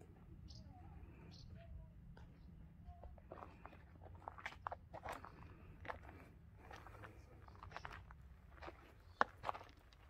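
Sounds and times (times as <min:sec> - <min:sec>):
footsteps crunching on gravel: 0:03.3 - 0:10.0.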